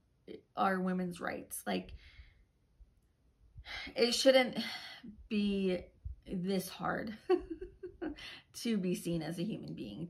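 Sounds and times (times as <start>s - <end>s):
woman breathing in: 1.9s - 2.5s.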